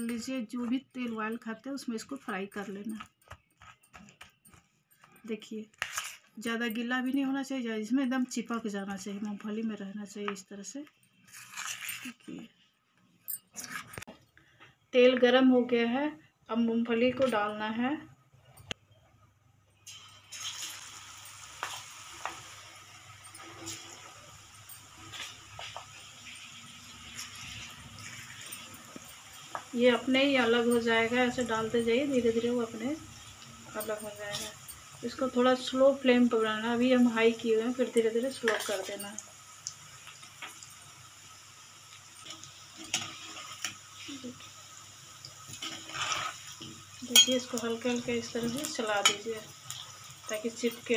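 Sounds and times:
peanuts deep-frying in hot oil: 0.0 - 3.0, 5.2 - 12.5, 19.8 - 50.9.

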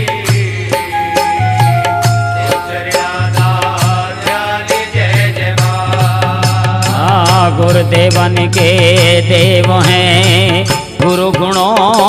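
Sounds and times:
percussion beats: 0.0 - 12.0
sustained melody line: 0.8 - 3.3.

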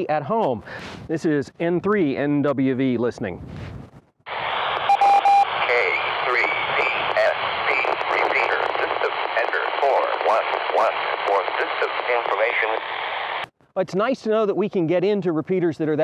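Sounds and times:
noisy radio hiss: 4.3 - 13.5
short radio beep: 4.8 - 9.1.

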